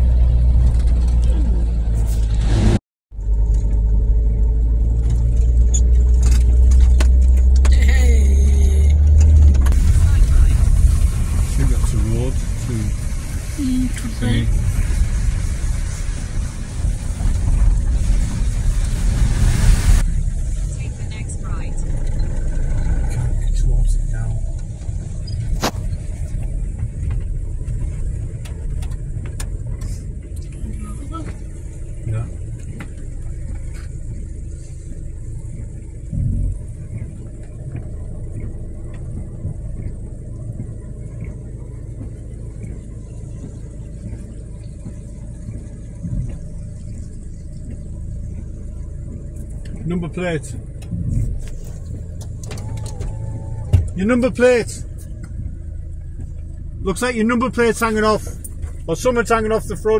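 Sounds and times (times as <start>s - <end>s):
vehicle engine and road rumble: 0.0s - 59.9s
loud rushing noise: 14.5s - 20.3s.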